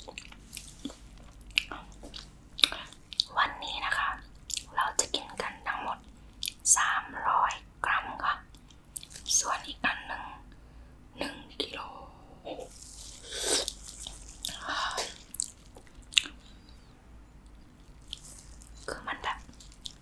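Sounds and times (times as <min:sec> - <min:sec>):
soft whispers: 0:00.5 - 0:08.5, 0:09.2 - 0:10.5, 0:11.2 - 0:15.3, 0:16.2 - 0:20.0
chewing raw fish: 0:12.7 - 0:16.8, 0:17.5 - 0:20.0
mouth smacks and wet clicks: 0:13.6 - 0:16.5.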